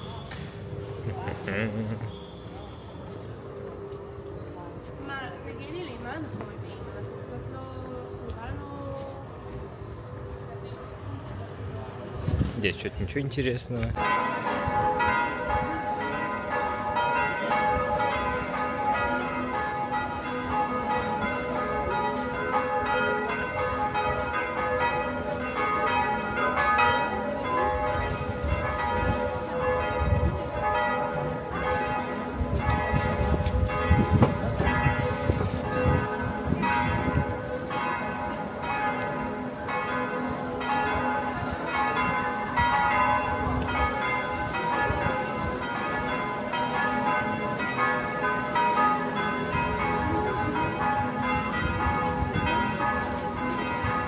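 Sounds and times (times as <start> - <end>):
church bells ringing: 0.0 - 12.8, 13.4 - 54.0.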